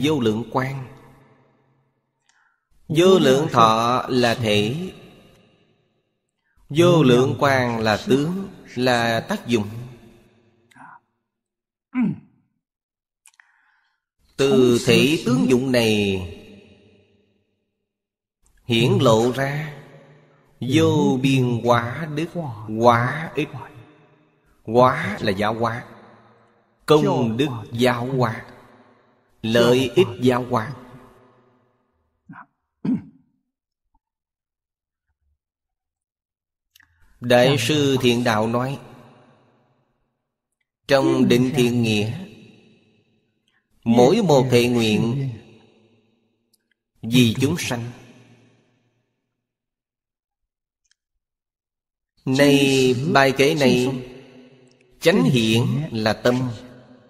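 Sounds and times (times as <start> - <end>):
man speaking: 0.0 - 0.9, 2.9 - 5.0, 6.7 - 9.9, 14.4 - 16.4, 18.7 - 19.8, 20.6 - 23.7, 24.7 - 25.8, 26.9 - 28.4, 29.4 - 30.8, 37.2 - 38.8, 40.9 - 42.3, 43.9 - 45.4, 47.0 - 48.0, 52.3 - 54.1, 55.0 - 56.6.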